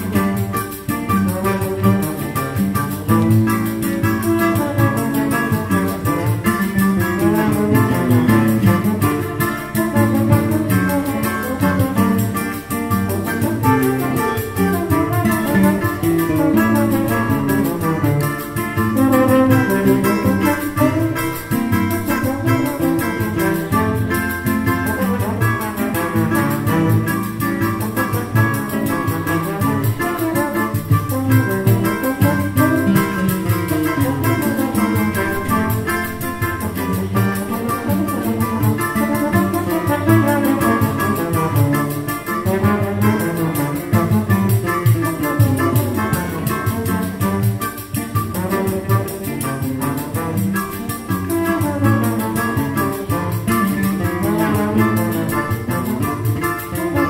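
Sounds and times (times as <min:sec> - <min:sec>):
acoustic guitar: 0:00.0 - 0:57.0
pandeiro frame drum: 0:00.0 - 0:57.0
trombone: 0:00.0 - 0:57.0
wind instruments: 0:00.0 - 0:57.0.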